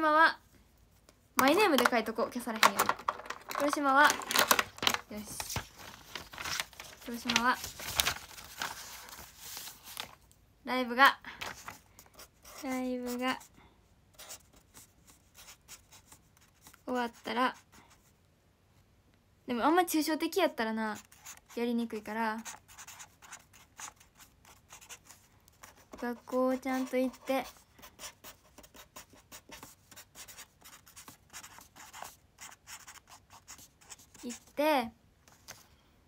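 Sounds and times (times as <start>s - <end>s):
marker pen scratching: 22.4s - 34.5s.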